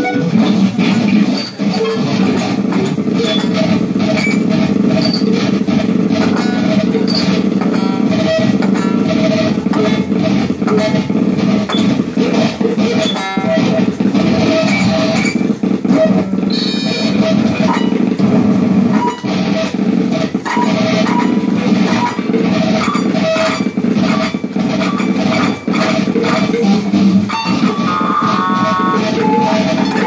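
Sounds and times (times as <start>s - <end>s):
short pitched blips and clicks: 12.9s - 18.0s, 24.2s - 30.0s
steady high tones: 26.5s - 30.0s.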